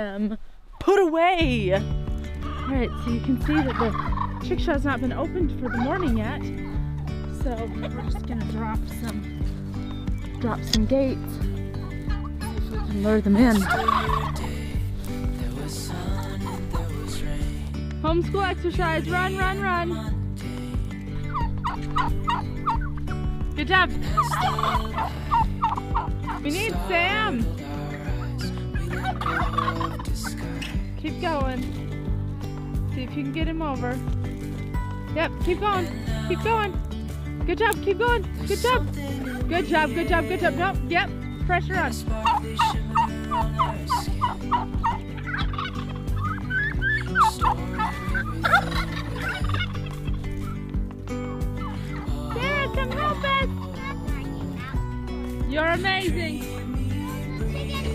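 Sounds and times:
turkeys calling: 2.2s - 7.1s, 9.3s - 10.4s, 11.7s - 15.2s, 15.8s - 17.2s, 21.2s - 27.2s, 28.2s - 30.8s, 42.2s - 55.4s.

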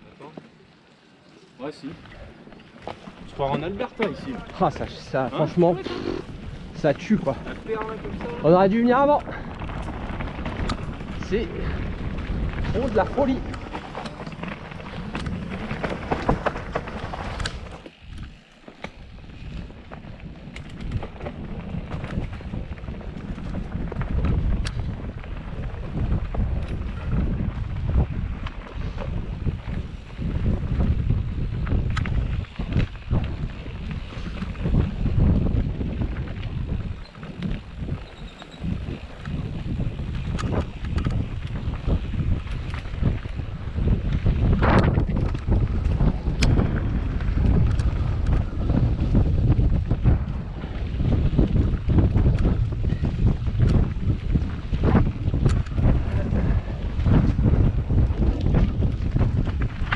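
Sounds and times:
bike knocking and rattling: 2.0s - 59.9s
wind buffeting microphone: 2.1s - 59.9s.

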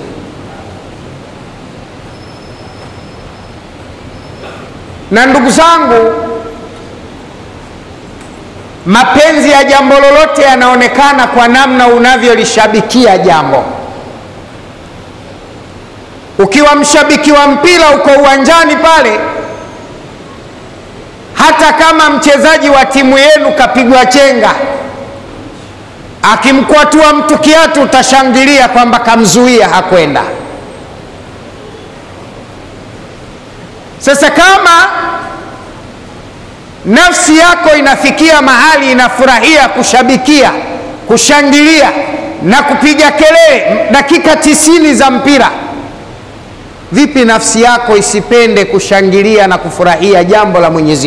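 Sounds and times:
constant background hiss: 0.0s - 51.0s
low room noise: 0.0s - 51.0s.

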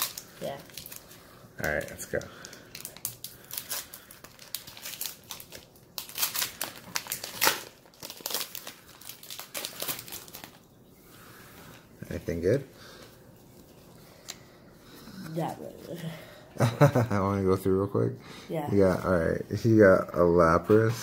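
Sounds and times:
foil wrapper crinkling: 0.0s - 10.8s.

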